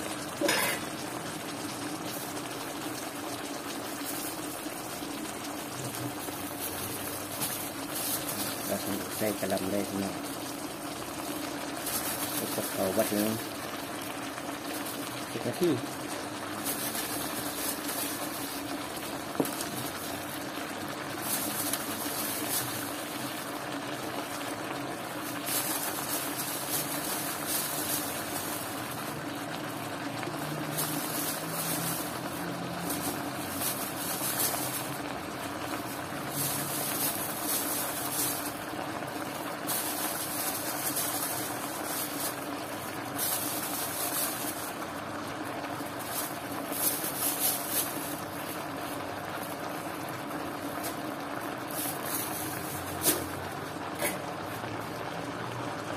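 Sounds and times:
food sizzling in a wok: 0.0 - 55.9
cabbage leaves rustling: 6.1 - 10.3, 11.2 - 13.5, 14.6 - 29.3, 30.6 - 49.6, 50.2 - 53.6.

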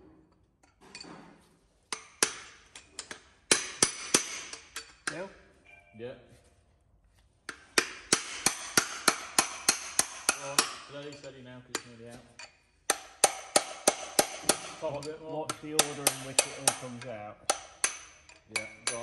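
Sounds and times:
hammer striking steel: 1.9 - 5.2, 7.5 - 19.0.

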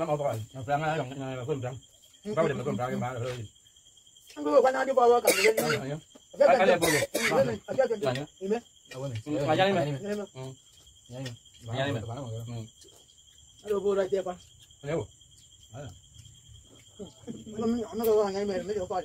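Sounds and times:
people talking: 0.0 - 3.5, 4.4 - 12.8, 13.6 - 15.1, 15.7 - 16.0, 17.0 - 19.0
crickets trilling: 0.0 - 19.0.

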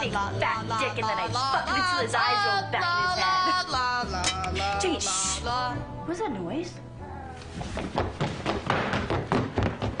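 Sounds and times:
footsteps thudding down stairs: 7.6 - 10.0.

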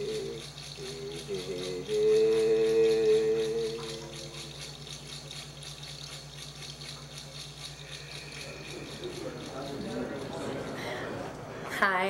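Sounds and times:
hand rattle shaken rhythmically: 0.0 - 10.9.

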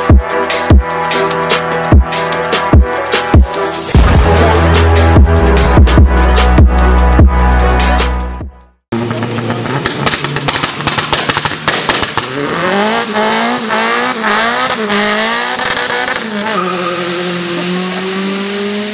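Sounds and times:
background music: 0.0 - 8.8
car engine revving with crackles: 8.9 - 18.9.

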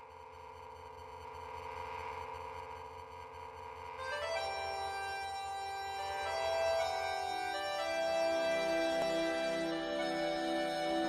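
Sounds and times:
organ-like keyboard chords: 4.0 - 11.0.

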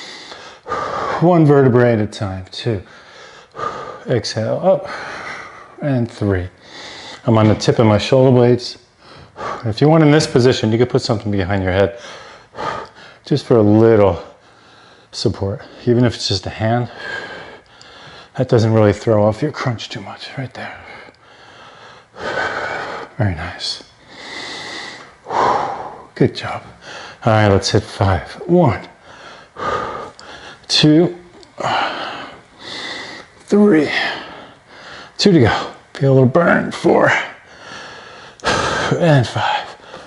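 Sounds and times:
man breathing: 0.0 - 1.4, 2.8 - 4.2, 4.8 - 5.9, 6.5 - 8.0, 8.9 - 9.7, 11.9 - 13.3, 14.1 - 15.9, 16.8 - 18.4, 20.6 - 23.2, 24.0 - 27.3, 28.9 - 35.9, 37.2 - 40.0.

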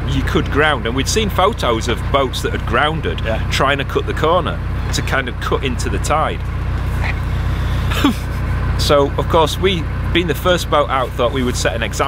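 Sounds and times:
boat diesel engine droning: 0.0 - 12.0
person laughing: 7.0 - 8.6
person speaking: 10.3 - 12.0.

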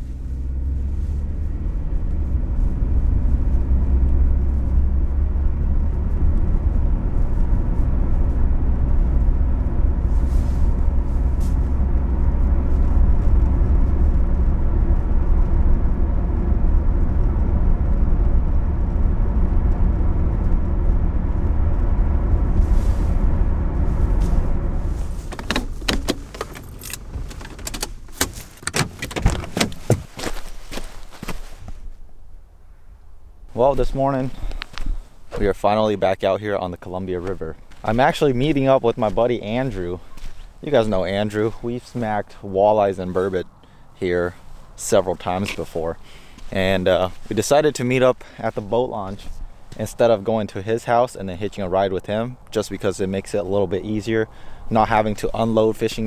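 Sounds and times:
car engine and road noise: 0.0 - 56.0
footsteps crunching on gravel: 29.4 - 31.9, 33.7 - 36.0, 36.7 - 42.4, 44.3 - 50.2.

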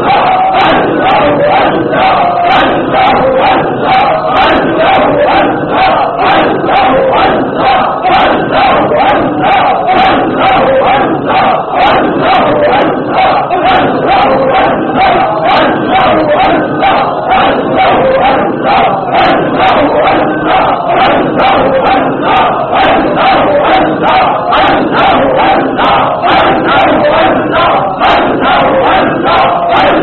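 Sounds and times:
crowd chanting in unison: 0.0 - 30.0.

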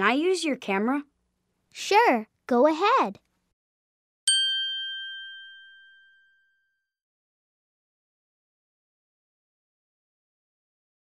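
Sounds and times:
bell-like chime ringing: 4.3 - 7.0.

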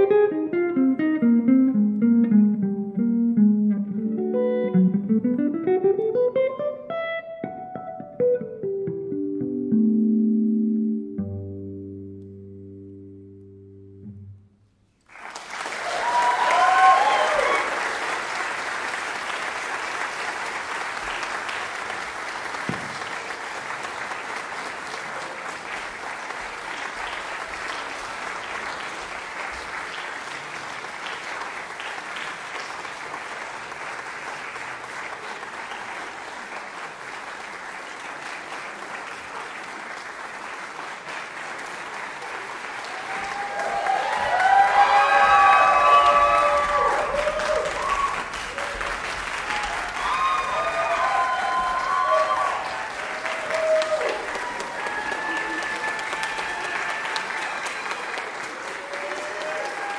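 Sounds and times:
audience applause: 15.0 - 59.9
people whooping: 15.6 - 18.0, 42.8 - 59.9.

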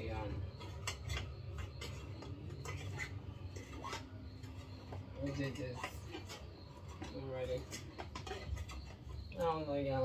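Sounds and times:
metal utensil clinking on pot: 0.0 - 9.6
steady low hum: 0.0 - 10.0.

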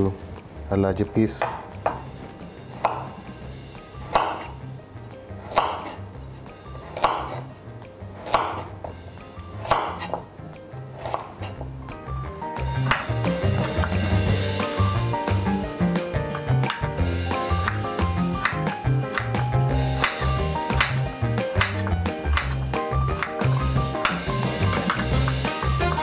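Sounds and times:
background music: 0.0 - 26.0
knife cutting carrot on wooden board: 4.1 - 4.6, 5.4 - 7.5, 8.2 - 8.9, 9.6 - 10.2, 10.8 - 11.7, 20.0 - 25.3.

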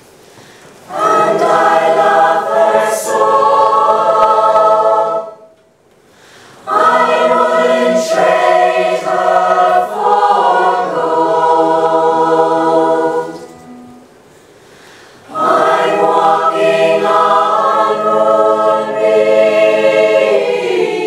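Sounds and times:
mixed choir singing chords: 0.8 - 14.3, 15.2 - 21.0.

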